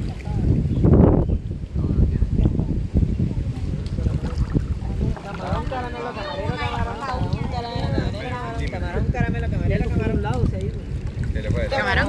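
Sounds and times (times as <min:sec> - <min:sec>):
water sloshing and splashing: 0:00.0 - 0:00.6, 0:03.5 - 0:08.8, 0:10.4 - 0:12.0
wind rumble on microphone: 0:00.0 - 0:12.0
people talking: 0:01.8 - 0:10.8, 0:11.4 - 0:12.0.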